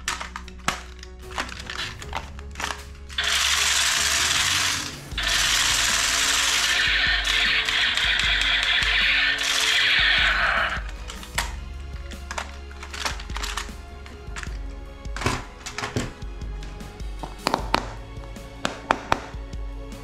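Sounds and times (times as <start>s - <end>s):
toy machine gun firing: 3.2s - 11.5s.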